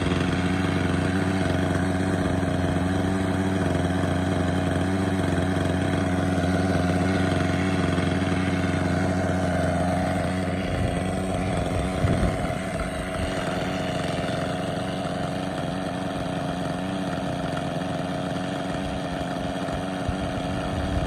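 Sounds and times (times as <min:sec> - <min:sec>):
small engine idling: 0:00.0 - 0:21.0.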